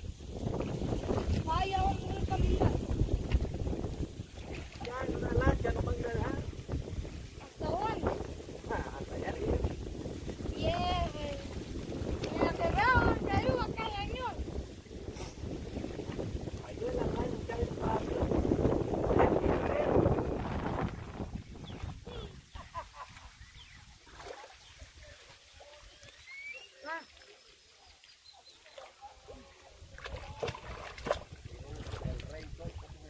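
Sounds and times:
wind buffeting microphone: 0.0 - 22.7, 29.8 - 33.0
rippling lake water: 0.0 - 33.0.

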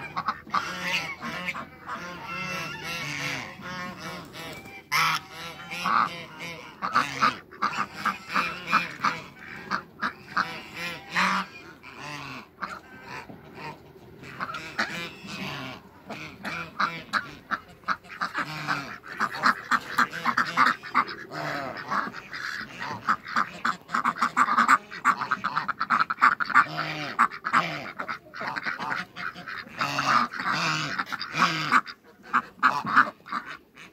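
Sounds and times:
ducks quacking: 0.0 - 33.9.

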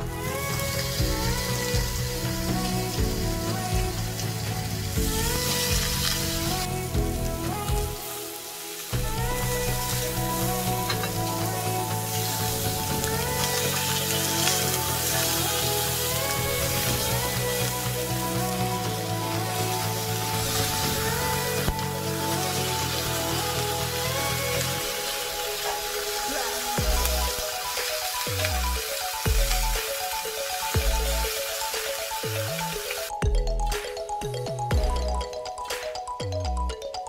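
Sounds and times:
background music: 0.0 - 37.0
meat sizzling in grill pan: 0.2 - 33.0.

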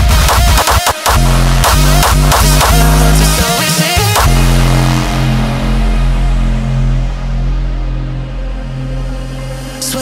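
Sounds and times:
held synth chord and bass: 1.0 - 10.0.

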